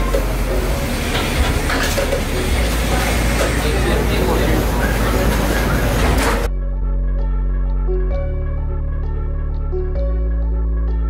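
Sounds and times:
music with held tones: 0.0 - 11.0.

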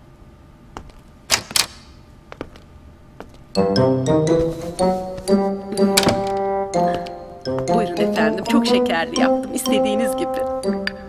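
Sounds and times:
background music: 3.5 - 11.0.

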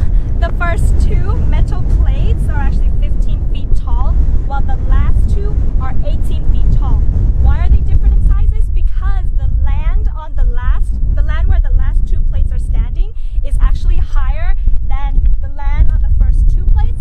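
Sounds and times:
wind buffeting microphone: 0.0 - 17.0
woman talking excitedly: 0.0 - 17.0.

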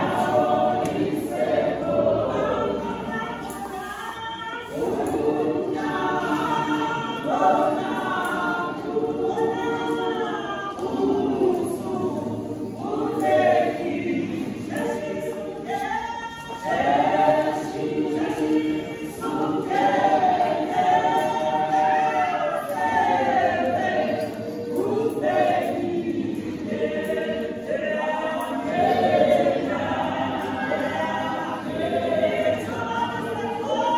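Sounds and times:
women's choir singing: 0.0 - 33.9.

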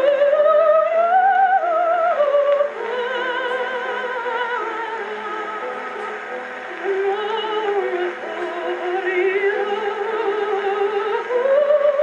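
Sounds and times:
soprano singing on phonograph: 0.0 - 12.0.

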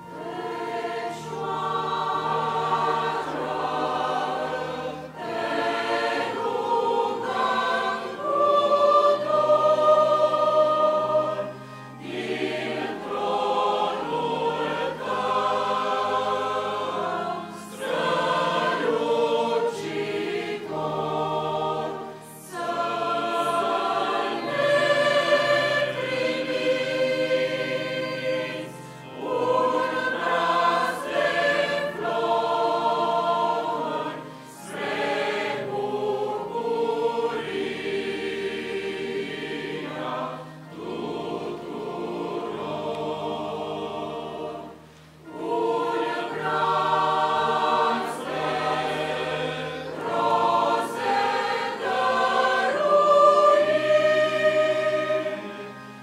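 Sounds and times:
mixed choir singing: 0.0 - 56.0.

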